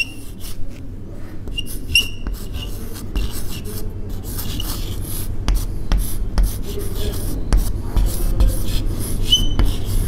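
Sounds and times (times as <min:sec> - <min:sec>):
chalk scratching on blackboard: 0:01.5 - 0:10.0
chalk tapping on board: 0:05.5 - 0:10.0.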